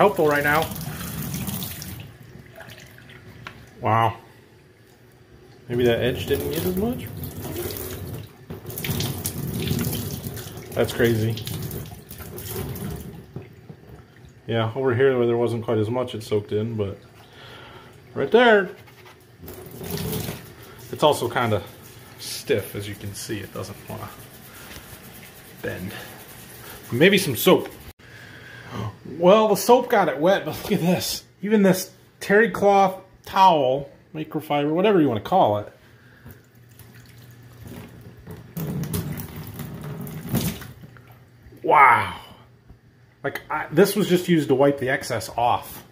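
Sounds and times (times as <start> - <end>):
water splashing into a sink: 0.0 - 3.8, 5.7 - 14.5, 19.4 - 24.0, 36.3 - 41.3
water running from a faucet: 0.0 - 3.9, 5.6 - 14.4, 19.4 - 27.9.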